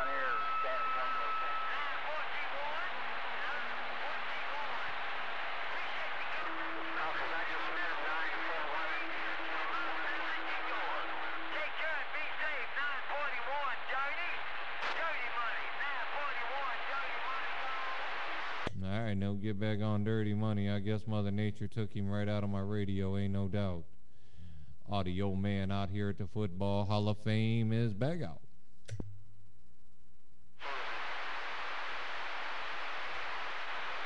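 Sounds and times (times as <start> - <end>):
faint garbled radio voices: 0.0 - 18.7
radio static hiss: 0.0 - 18.7, 30.6 - 34.0
click: 28.8 - 29.1.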